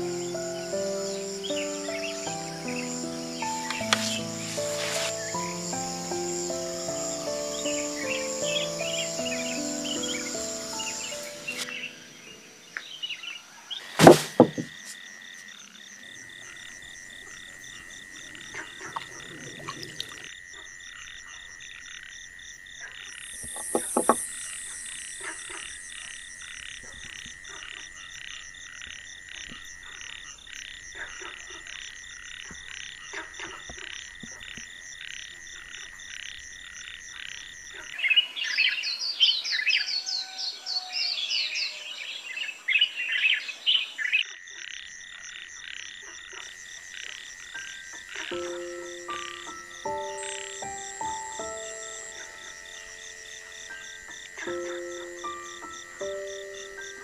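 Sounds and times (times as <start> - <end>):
rapid chirping calls: 0.0 - 14.8, 47.6 - 57.0
insect trilling: 0.0 - 57.0.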